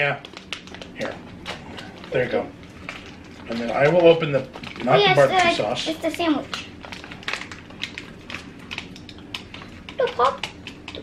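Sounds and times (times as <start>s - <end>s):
plastic pouches crinkling: 0.0s - 11.0s.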